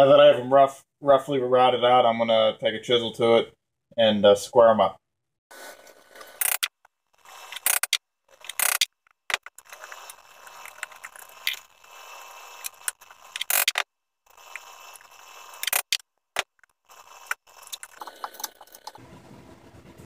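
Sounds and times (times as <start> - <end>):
chisel cutting wood: 7.4 - 17.7.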